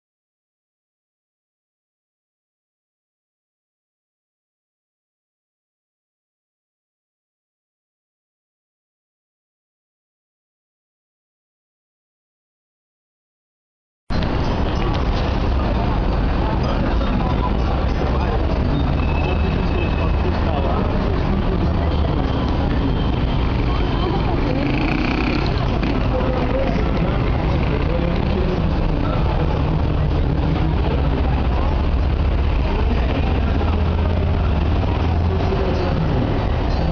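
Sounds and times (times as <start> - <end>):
people's voices: 14.1 - 36.9
road traffic: 14.1 - 36.9
heavy low rumble: 20.1 - 36.9.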